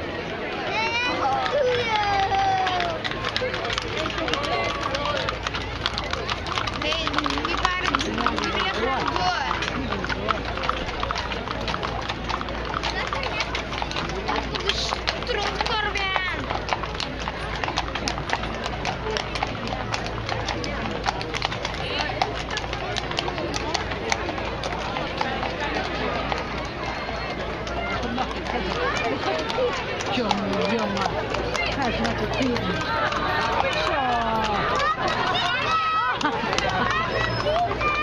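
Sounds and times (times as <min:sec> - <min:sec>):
crowd chattering: 0:00.0 - 0:38.0
horse hooves on brick: 0:00.8 - 0:38.0.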